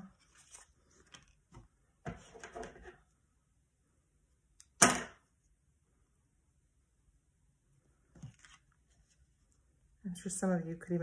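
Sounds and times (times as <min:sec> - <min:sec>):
paper rustling: 0:00.2 - 0:01.6, 0:08.1 - 0:09.4.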